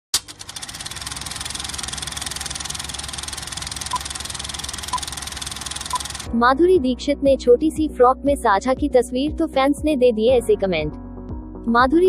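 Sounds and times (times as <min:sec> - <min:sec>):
film projector clattering: 0:00.1 - 0:06.3.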